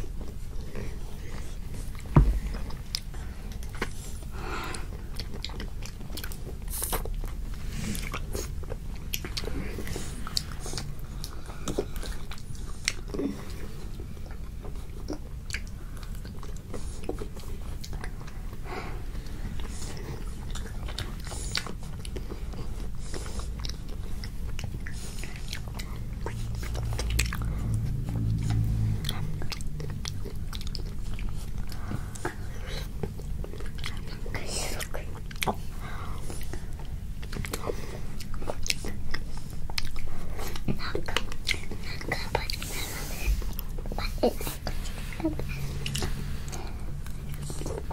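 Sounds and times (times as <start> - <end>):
chewing: 0.0 - 47.9.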